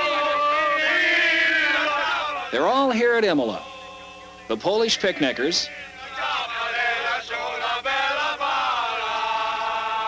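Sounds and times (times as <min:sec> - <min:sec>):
men singing chant-like song: 0:00.0 - 0:10.0.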